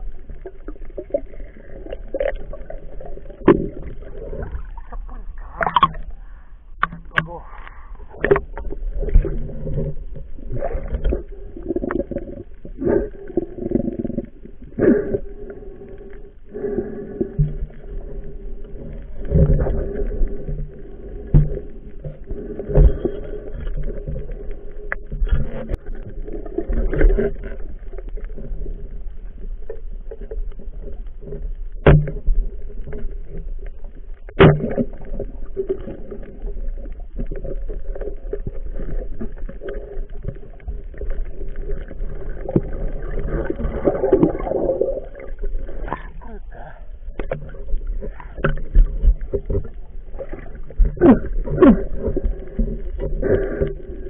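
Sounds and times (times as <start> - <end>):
low rumble of water movement: 0.0 - 54.0.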